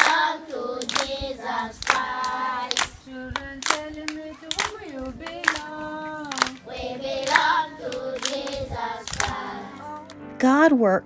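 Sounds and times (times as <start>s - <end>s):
children clapping hands: 0.0s - 10.2s
young children singing: 0.0s - 10.3s.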